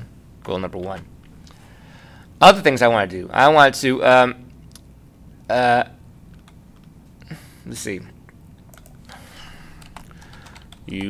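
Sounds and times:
typing on computer keyboard: 0:08.7 - 0:09.0, 0:09.7 - 0:11.0.

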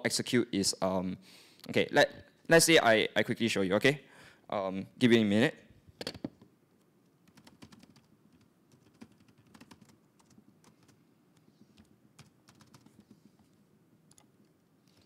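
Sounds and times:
faint keyboard typing: 0:06.0 - 0:15.0.

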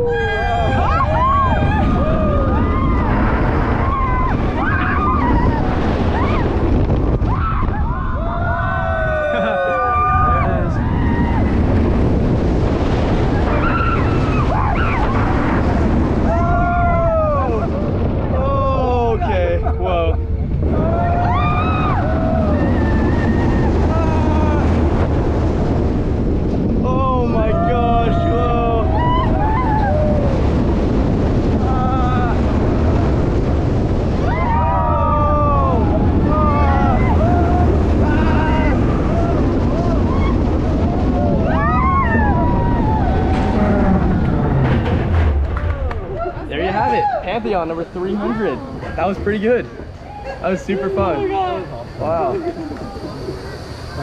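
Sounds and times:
riders yelling and screaming: 0:00.0 - 0:44.9, 0:45.6 - 0:54.0
roller coaster train rumbling: 0:00.0 - 0:54.0
wind rushing over microphone: 0:00.0 - 0:54.0.

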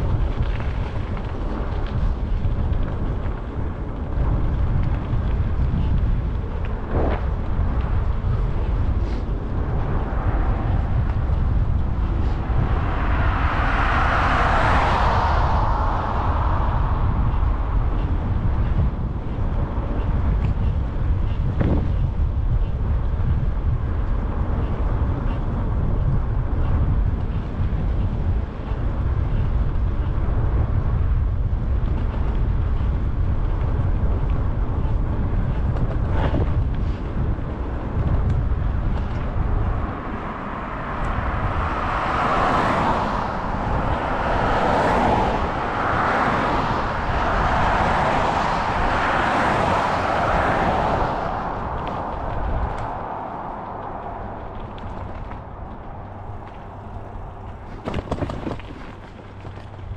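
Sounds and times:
wind rumbling on microphone: 0:00.0 - 0:59.9
passing road traffic hiss: 0:08.8 - 0:18.8, 0:39.4 - 0:55.0.

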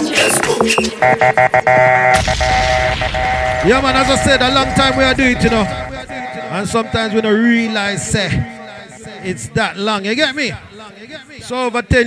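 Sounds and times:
dance music: 0:00.4 - 0:09.4
stuttering held chord: 0:03.4 - 0:09.3.

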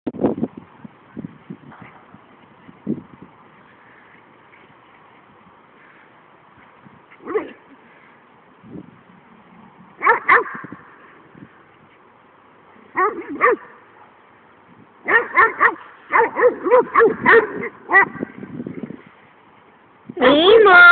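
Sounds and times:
dog yipping: 0:10.0 - 0:10.6, 0:13.0 - 0:13.7, 0:15.1 - 0:18.2.

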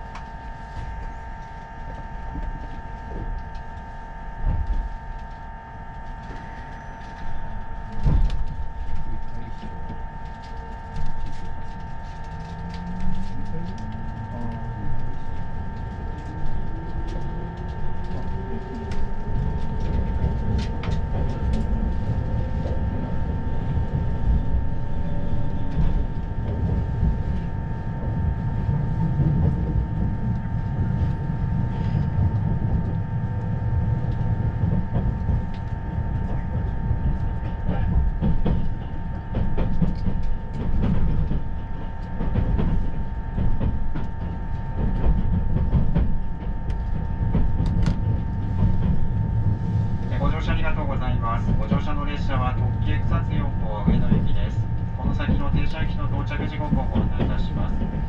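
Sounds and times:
constant high whine: 0:00.0 - 0:58.0
train running rumble: 0:00.0 - 0:58.0.

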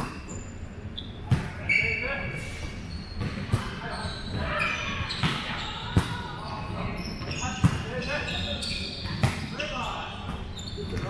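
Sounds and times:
sneakers squeaking on court: 0:00.0 - 0:11.0.

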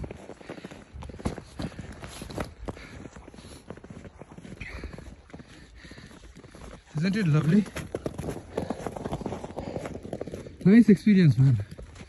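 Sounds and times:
footsteps in snow: 0:00.0 - 0:12.0.

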